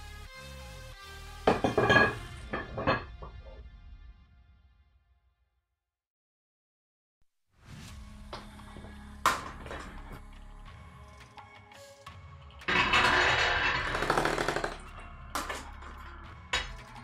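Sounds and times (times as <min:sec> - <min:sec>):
electronic music with bass: 0:00.0 - 0:02.8.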